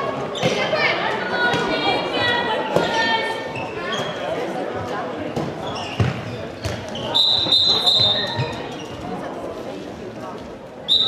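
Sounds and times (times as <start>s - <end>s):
referee's whistle blast: 7.1s - 8.4s.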